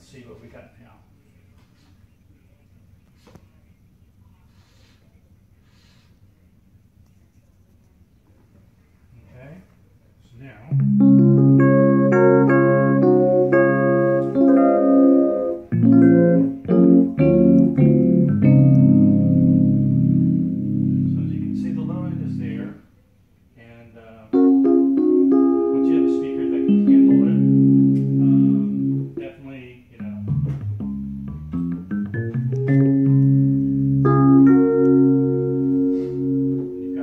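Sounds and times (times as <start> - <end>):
electric keyboard chords: 10.7 - 22.8, 24.2 - 37.0.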